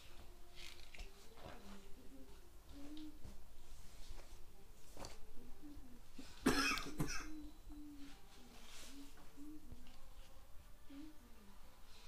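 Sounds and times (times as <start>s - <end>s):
child coughing: 6.4s - 7.4s.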